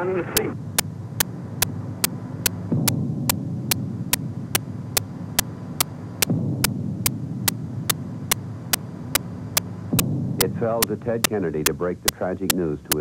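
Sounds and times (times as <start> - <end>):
steady low hum: 0.0 - 13.0
sharp repeating tick: 0.4 - 13.0
person narrating: 10.4 - 13.0.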